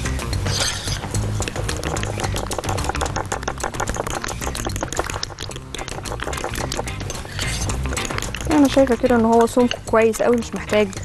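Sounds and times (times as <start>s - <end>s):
background music: 0.0s - 11.0s
fork beating batter in glass bowl: 0.5s - 11.0s.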